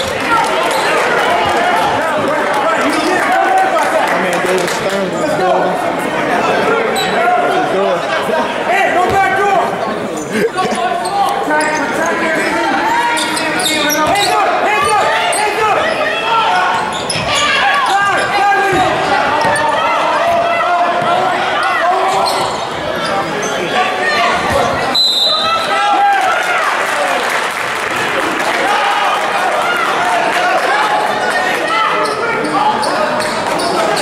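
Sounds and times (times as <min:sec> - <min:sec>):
chatter and shouts of people: 0:00.0 - 0:34.0.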